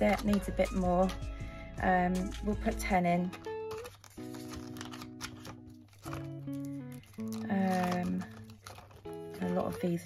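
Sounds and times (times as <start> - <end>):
plastic binder pockets crinkling: 0.0 - 1.2, 2.3 - 10.0.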